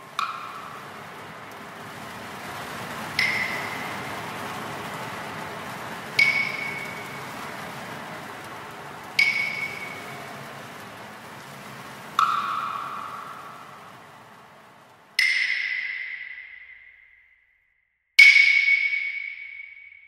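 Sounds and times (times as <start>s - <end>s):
soft hissing wash: 0.0s - 15.3s.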